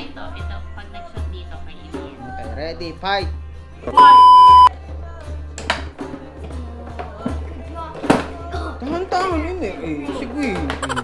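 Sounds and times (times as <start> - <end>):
background music: 0.0 - 11.0
loud electronic beep: 4.0 - 4.7.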